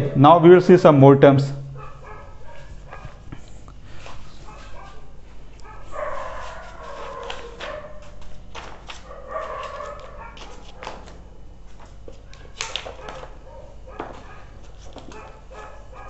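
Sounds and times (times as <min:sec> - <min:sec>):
animal high-pitched cries: 0:05.8 - 0:07.7.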